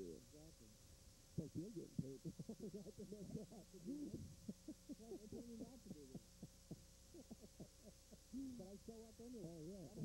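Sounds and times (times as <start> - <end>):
faint steady hum: 0.0 - 10.0
muffled commentators talking: 1.4 - 6.4, 8.3 - 10.0.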